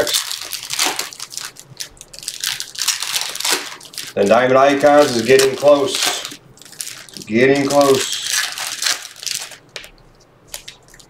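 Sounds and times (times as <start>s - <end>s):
foil wrapper crinkling: 0.0s - 11.0s.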